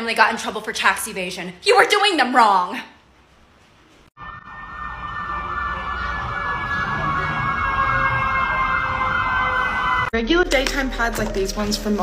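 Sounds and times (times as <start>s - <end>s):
high wavering tone: 4.2s - 10.1s.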